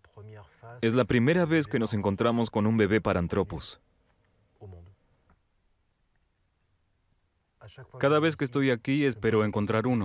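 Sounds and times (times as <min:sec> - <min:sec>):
man speaking: 0:00.1 - 0:03.8, 0:07.6 - 0:10.0.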